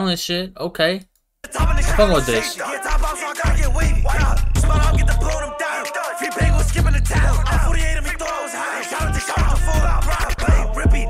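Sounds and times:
rapping over a drill beat: 1.4 - 11.0
heavy deep bass: 1.6 - 2.3, 2.9 - 5.5, 6.4 - 8.3, 9.0 - 11.0.

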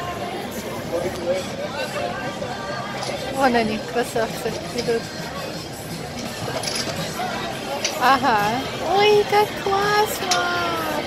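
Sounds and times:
background music: 0.0 - 11.0
murmur of diners' voices: 0.0 - 11.0
tableware clinking: 6.2 - 7.2.

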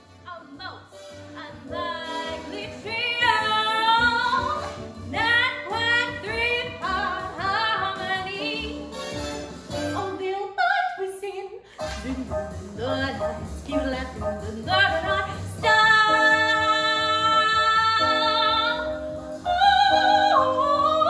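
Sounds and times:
woman singing operatically: 0.3 - 8.8, 10.0 - 21.0.

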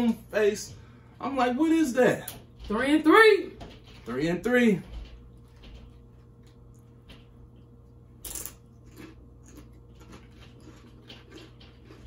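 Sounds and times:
chips being chewed: 5.8 - 12.0.

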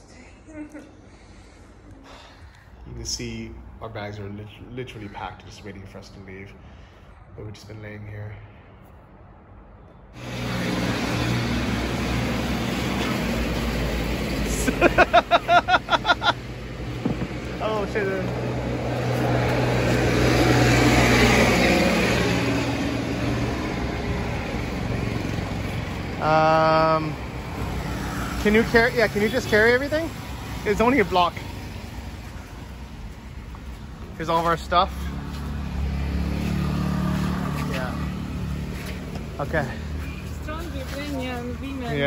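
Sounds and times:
vehicle engine running: 10.2 - 42.0.

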